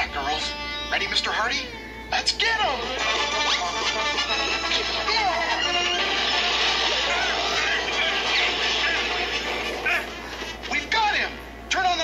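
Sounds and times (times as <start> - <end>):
cartoon music from television: 0.0 - 12.0.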